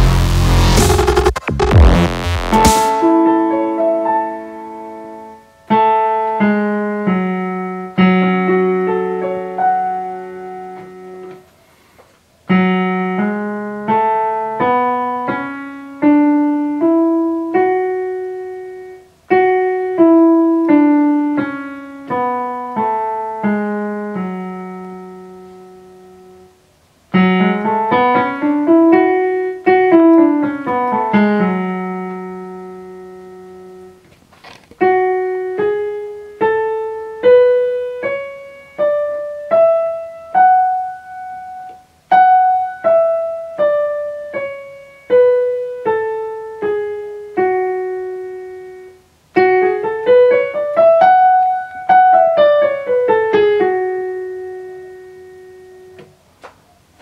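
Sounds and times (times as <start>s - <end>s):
electronic keyboard playing scale: 0.0s - 11.4s, 34.8s - 56.0s.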